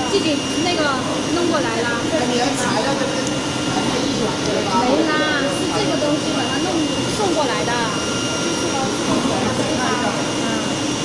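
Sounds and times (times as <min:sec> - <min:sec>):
blower rushing with high whine: 0:00.0 - 0:11.0.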